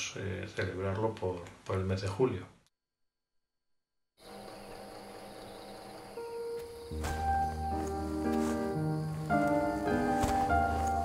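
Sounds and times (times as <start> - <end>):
crickets chirping: 4.2 - 11.0.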